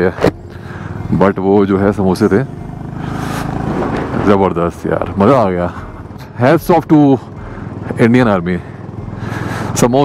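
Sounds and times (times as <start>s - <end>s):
motorcycle engine running: 0.0s - 10.0s
man speaking: 4.2s - 7.2s.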